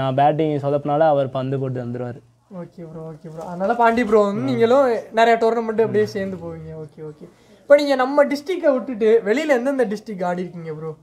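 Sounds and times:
man speaking with drawn-out vowels: 5.6 - 7.2.

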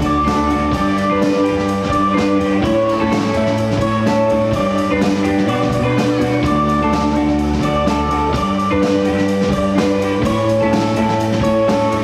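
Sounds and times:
bass guitar: 0.0 - 12.0
drum kit cymbal beat: 0.0 - 12.0
electric guitars sustained chords: 0.0 - 12.0.

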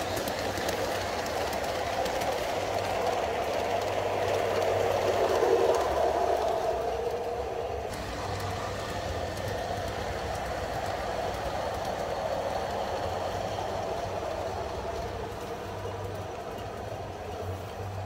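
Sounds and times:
model train running on track: 0.0 - 18.0.

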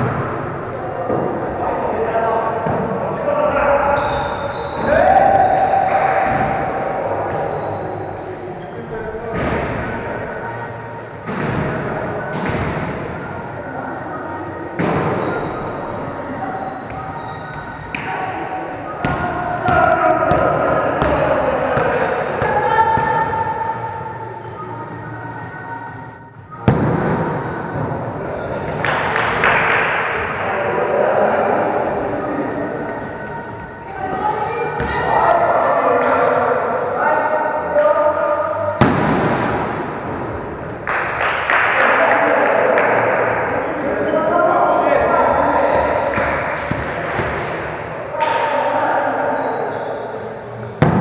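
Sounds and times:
players' voices echoing: 0.0 - 51.0.

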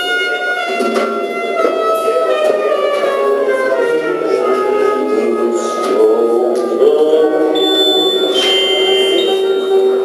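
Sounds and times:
live band playing droning notes: 0.0 - 10.0
thin high tone: 6.8 - 10.0.

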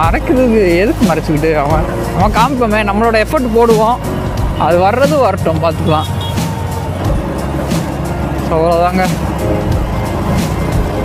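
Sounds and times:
background music: 0.0 - 11.0
motorcycle engine and road noise: 0.0 - 11.0.

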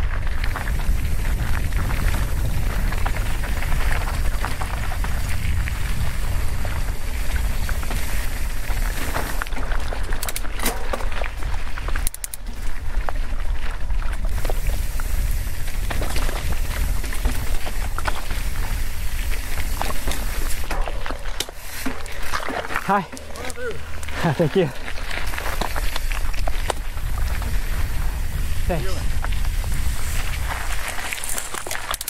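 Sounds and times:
wind buffeting microphone: 0.0 - 10.2, 11.0 - 21.2, 22.1 - 31.9
bike rattling: 0.0 - 32.0
tyres crunching over loose rock: 0.0 - 32.0.

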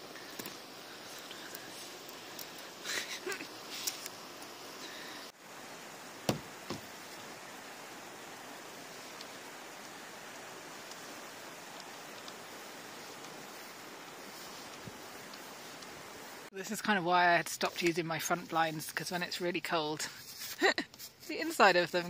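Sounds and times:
snow being brushed off panel: 6.1 - 16.3, 20.0 - 22.0
sharp knocks: 6.3 - 6.9.

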